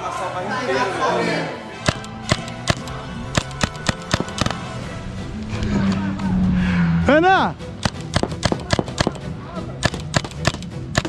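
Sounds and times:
background music: 0.0 - 11.0
paintball marker shots: 1.8 - 4.6, 7.8 - 11.0.

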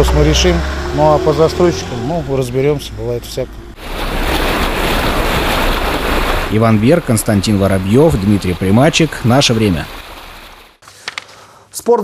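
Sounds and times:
car splashing through water: 0.0 - 10.8.

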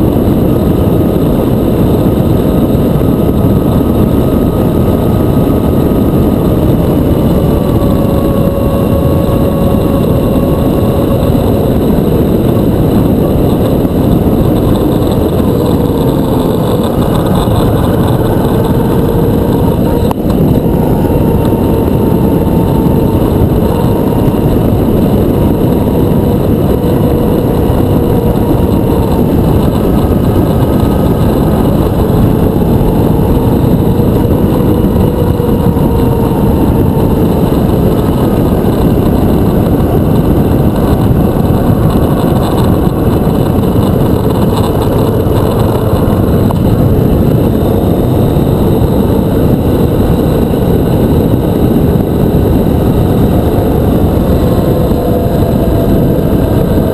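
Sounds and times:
motorcycle engine running: 0.0 - 56.9
wind rush on microphone: 0.0 - 56.9.

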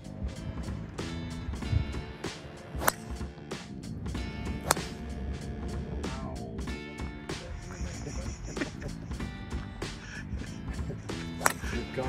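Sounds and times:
background music: 0.0 - 12.0
golf club striking ball: 1.4 - 3.2, 4.1 - 5.2, 11.1 - 11.9.

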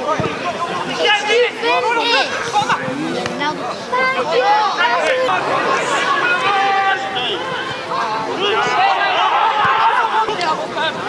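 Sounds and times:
crowd shouting and talking: 0.0 - 11.0.

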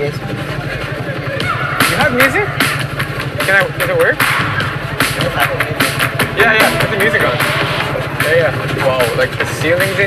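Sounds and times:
car engine idling: 0.0 - 10.0.

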